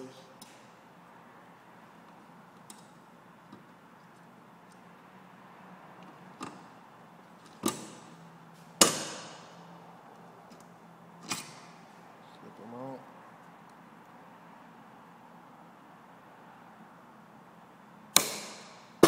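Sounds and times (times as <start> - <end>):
bolt cutters snipping wire: 18.2 - 18.7.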